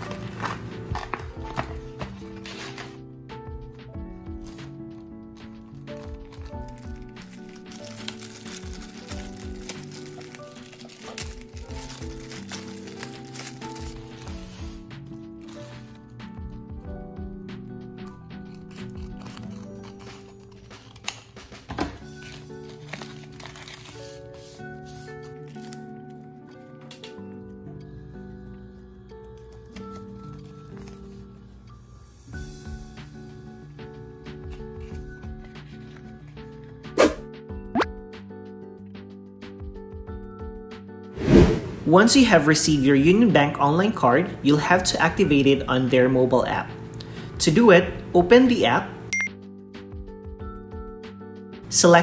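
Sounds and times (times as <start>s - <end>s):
paper rustling: 0.0s - 3.0s, 4.4s - 14.8s, 18.5s - 25.9s, 29.4s - 31.3s
plastic pouch tearing: 0.0s - 3.0s, 4.3s - 14.8s, 15.4s - 16.0s, 18.4s - 25.9s
scissors snipping paper: 0.0s - 3.0s, 5.3s - 14.8s, 18.0s - 25.9s
background music: 0.0s - 52.0s.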